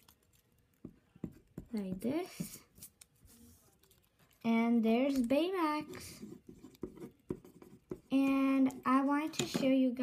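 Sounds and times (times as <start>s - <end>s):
pencil scratching on paper: 5.7s - 9.2s.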